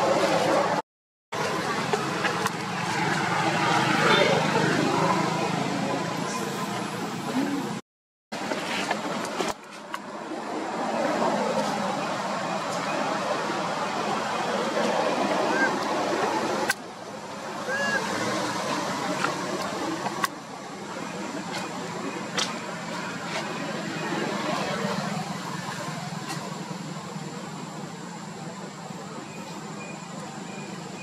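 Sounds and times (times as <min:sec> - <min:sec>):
outdoor background noise: 0:00.0 - 0:31.0.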